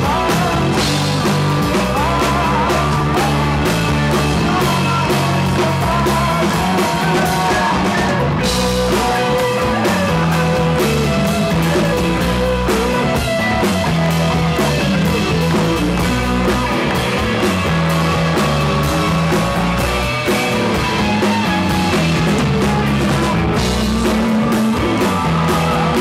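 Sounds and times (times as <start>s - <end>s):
electric guitar: 0.0s - 26.0s
rock band playing: 0.0s - 26.0s.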